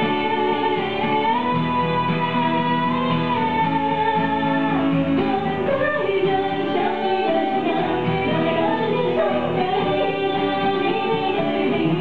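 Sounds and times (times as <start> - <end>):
acoustic guitar playing: 0.0 - 12.0.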